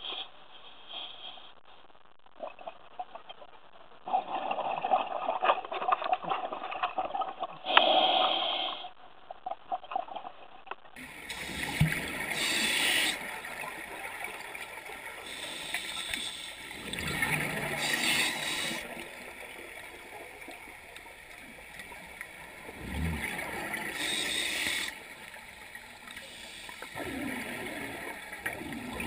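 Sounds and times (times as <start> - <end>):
water noise: 11.0 - 29.0
diver breathing through regulator: 11.3 - 13.3, 15.2 - 19.0, 22.9 - 25.0
gurgling exhaust bubbles: 22.5 - 24.9.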